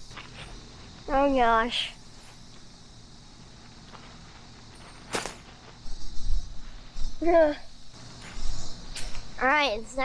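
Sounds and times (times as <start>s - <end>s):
rustling through dry vines and grass: 0.0s - 9.3s.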